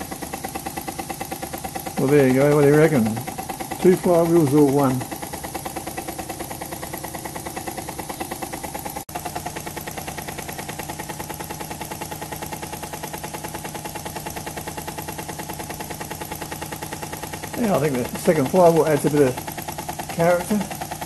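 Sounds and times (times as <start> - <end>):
model steam engine chuffing: 0.0 - 21.0.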